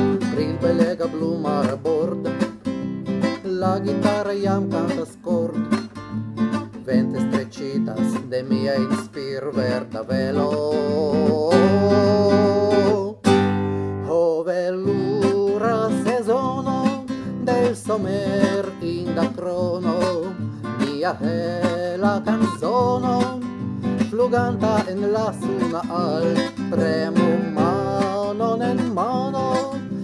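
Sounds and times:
man singing: 0:00.0 - 0:30.0
strummed acoustic guitar: 0:00.0 - 0:30.0.

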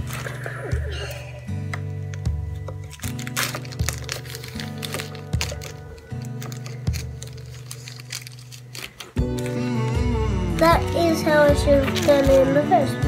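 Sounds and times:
plastic wrapping crinkling: 0:02.1 - 0:12.6
background music with bass line: 0:09.2 - 0:13.0.

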